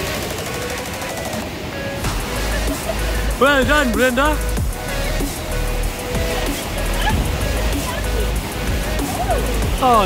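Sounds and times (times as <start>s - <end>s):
surf: 0.0s - 10.0s
wind: 0.0s - 10.0s.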